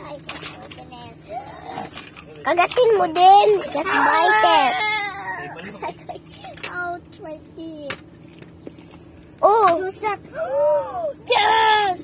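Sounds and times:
young child whining: 0:01.2 - 0:01.9, 0:03.7 - 0:05.6, 0:10.3 - 0:11.9.

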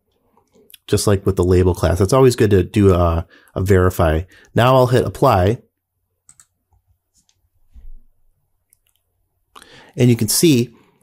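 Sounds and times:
faint mouse clicks: 0:06.3 - 0:07.4.

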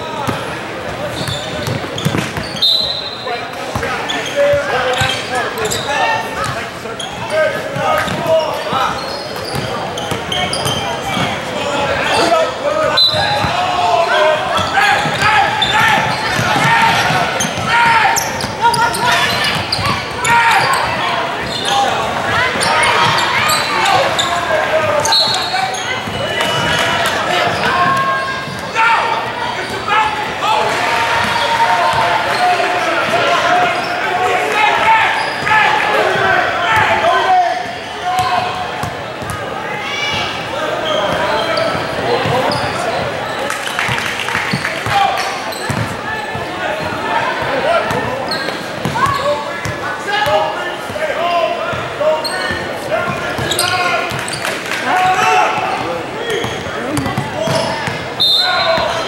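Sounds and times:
people talking and calling out: 0:00.0 - 0:59.0.

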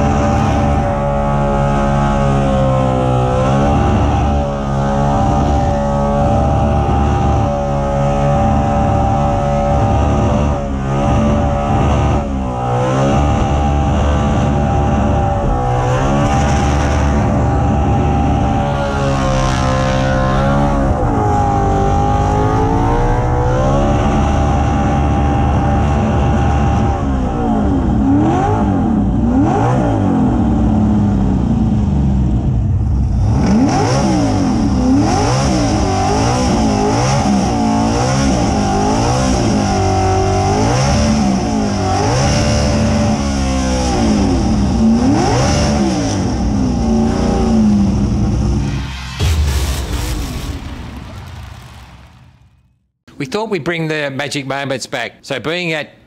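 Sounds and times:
car engine revving: 0:00.0 - 0:52.7.

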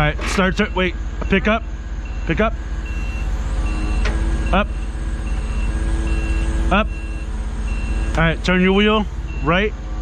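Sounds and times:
forklift engine running: 0:00.0 - 0:10.0
forklift warning beeps: 0:00.0 - 0:10.0.

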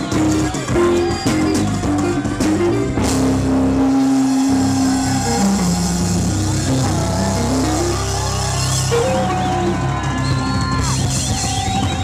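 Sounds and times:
instrumental band music: 0:00.0 - 0:12.0.

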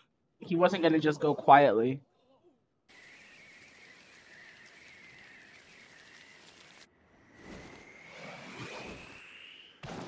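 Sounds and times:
thin wavering high whistle: 0:02.9 - 0:09.8.

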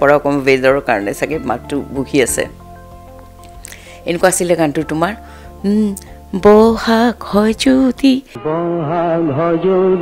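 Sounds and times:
woman singing unaccompanied: 0:05.6 - 0:08.5.

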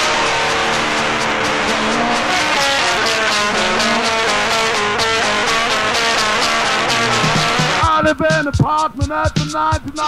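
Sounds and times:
distorted electric guitar run: 0:00.0 - 0:10.0
instrumental rock music: 0:00.0 - 0:10.0.

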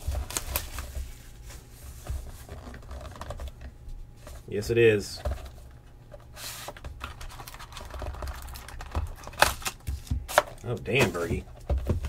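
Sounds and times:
cardboard rustle: 0:00.0 - 0:03.6, 0:06.3 - 0:12.0.

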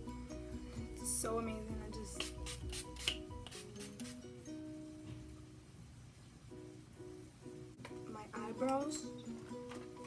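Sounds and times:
soft background music: 0:00.0 - 0:10.0
spray bottle hissing: 0:02.2 - 0:04.2.

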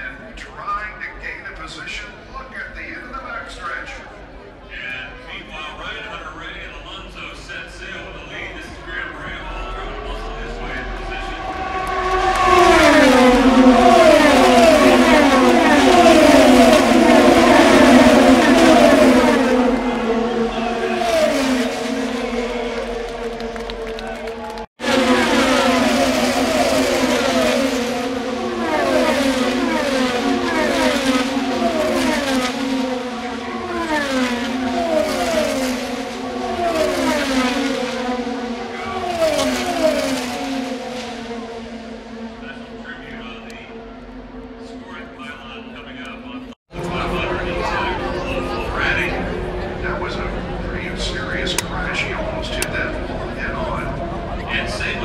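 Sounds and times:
race cars passing at full speed: 0:00.0 - 0:55.0.

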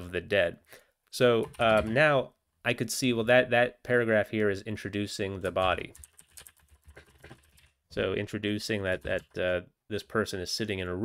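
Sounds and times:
computer keyboard typing: 0:01.4 - 0:02.0, 0:05.4 - 0:07.8, 0:08.8 - 0:09.4.

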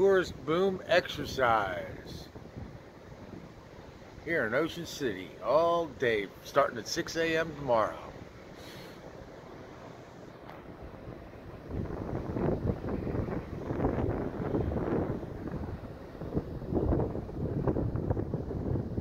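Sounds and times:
wind buffeting microphone: 0:00.0 - 0:05.2, 0:10.3 - 0:19.0
low steady background rumble: 0:00.0 - 0:19.0.

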